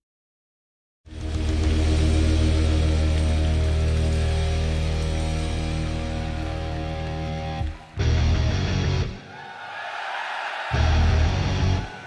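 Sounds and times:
distorted guitar and bass chord: 0:01.1 - 0:09.2.

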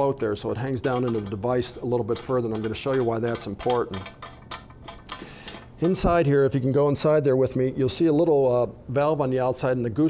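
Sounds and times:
metallic clicks: 0:00.8 - 0:06.2.

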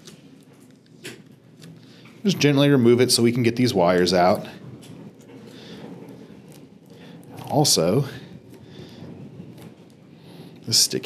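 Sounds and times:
wires rustling on metal: 0:00.0 - 0:11.0.

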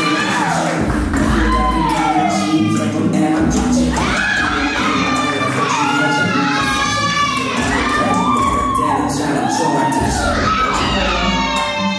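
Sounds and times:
recorded song playing: 0:00.0 - 0:11.9.

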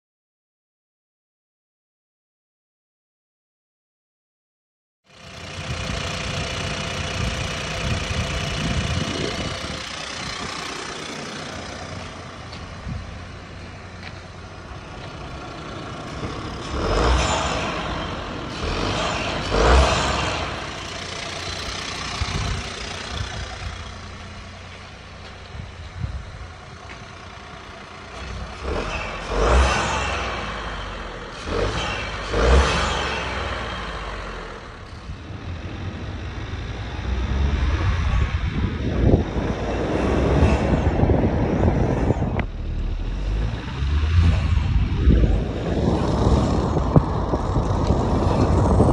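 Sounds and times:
car accelerating under load: 0:05.1 - 0:48.9
car engine revving: 0:05.1 - 0:48.9.

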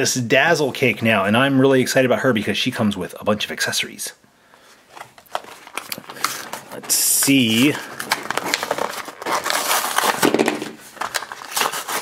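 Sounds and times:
plastic blister packaging crinkling: 0:04.9 - 0:12.0.

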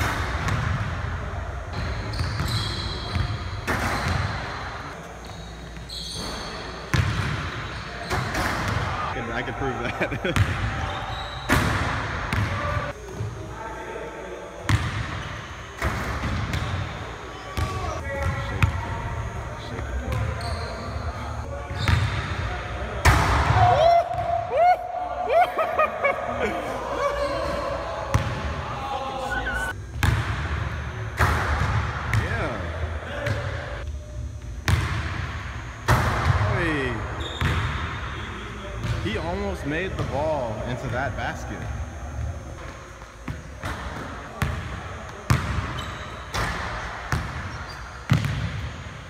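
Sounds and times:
ball hitting rim and backboard: 0:00.0 - 0:01.0, 0:01.8 - 0:04.6, 0:06.2 - 0:09.0, 0:10.4 - 0:10.7, 0:11.4 - 0:12.8, 0:14.7 - 0:16.8, 0:23.0 - 0:24.3, 0:28.1 - 0:28.5, 0:30.0 - 0:32.5, 0:34.6 - 0:36.8, 0:37.4 - 0:37.9, 0:42.6 - 0:47.5, 0:48.1 - 0:48.8
shoe squeaks: 0:01.8 - 0:08.5, 0:10.8 - 0:11.6, 0:20.2 - 0:22.0, 0:37.2 - 0:37.6, 0:45.7 - 0:46.4, 0:47.4 - 0:48.1.

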